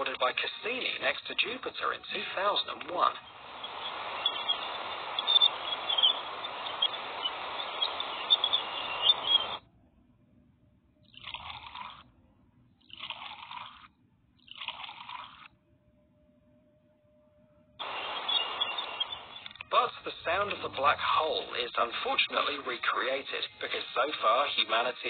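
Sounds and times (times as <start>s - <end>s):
steady hiss with crackles: 0.0s - 9.7s, 17.8s - 25.0s
faint steady tone: 0.0s - 11.1s, 15.5s - 25.0s
short noise bursts: 2.7s - 9.6s, 17.8s - 22.4s.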